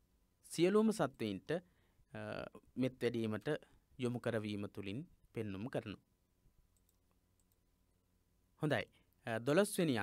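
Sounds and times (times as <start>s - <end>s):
computer mouse clicks: 6.7s - 7.6s.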